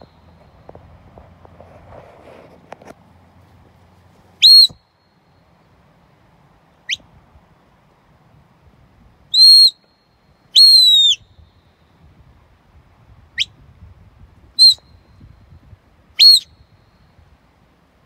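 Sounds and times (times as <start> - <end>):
high whistle commands: 4.4 - 4.8, 9.3 - 11.7, 14.6 - 15.3, 16.2 - 17.2.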